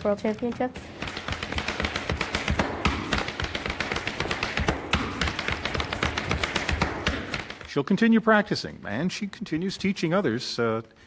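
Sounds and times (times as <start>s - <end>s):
hard shoes tapping on floor: 0.0s - 7.8s.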